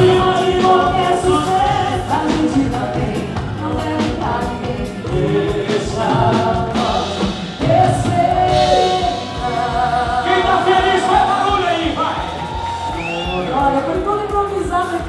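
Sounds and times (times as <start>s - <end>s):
voices singing together: 0.0s - 13.9s
live band music: 0.0s - 15.0s.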